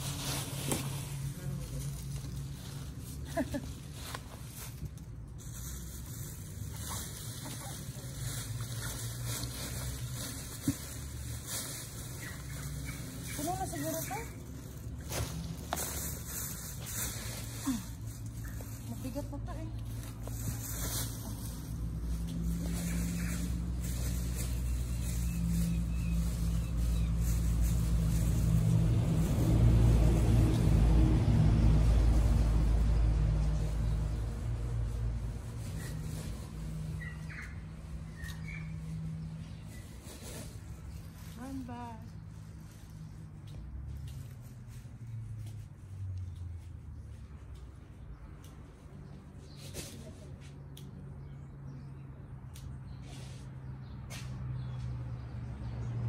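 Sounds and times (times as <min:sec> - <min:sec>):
dry leaves rustling: 0:00.0 - 0:50.4.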